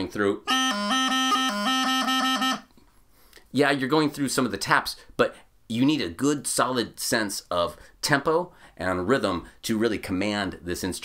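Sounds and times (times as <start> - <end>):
bagpipe practice chanter: 0.4 - 2.8.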